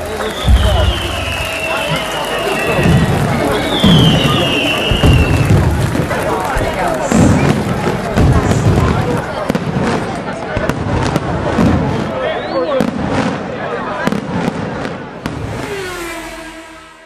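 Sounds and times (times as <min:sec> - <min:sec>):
firework whistle: 0:00.0 - 0:06.1, 0:07.0 - 0:08.9, 0:11.9 - 0:13.2, 0:15.2 - 0:17.0
crowd voices: 0:00.0 - 0:17.0
fireworks bangs and crackles: 0:00.0 - 0:17.0.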